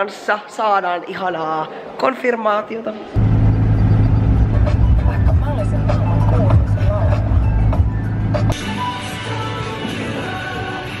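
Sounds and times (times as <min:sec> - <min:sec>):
car engine and road noise: 0:03.2 - 0:08.6.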